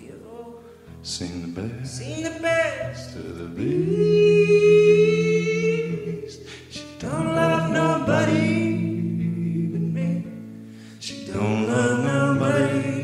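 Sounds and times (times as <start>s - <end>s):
person singing long notes: 2.0s - 10.3s.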